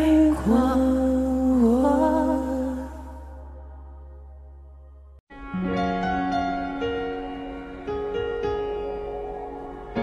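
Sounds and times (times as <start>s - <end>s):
soft sustained keyboard: 0.0s - 10.0s.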